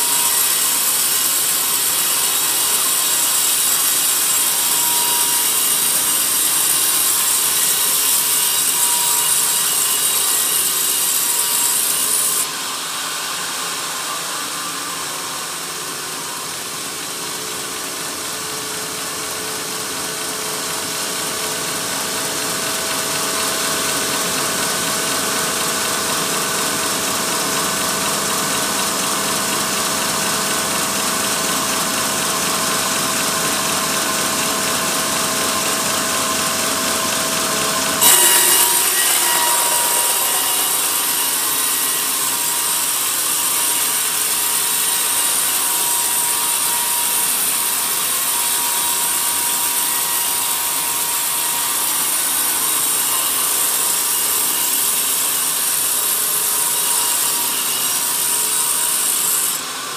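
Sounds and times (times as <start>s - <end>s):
saw blade cutting wood: 0.0s - 15.4s, 34.0s - 59.9s
sawmill humming: 34.0s - 52.2s.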